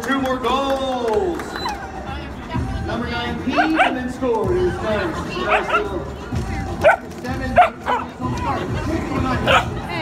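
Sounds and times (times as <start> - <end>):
puppies barking: 3.5 - 4.1, 5.4 - 6.1, 6.8 - 8.2, 9.4 - 9.8.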